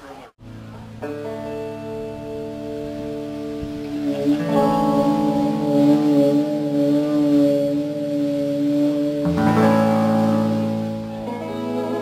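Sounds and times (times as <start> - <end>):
guitar and bass chord ringing: 0.4 - 12.0.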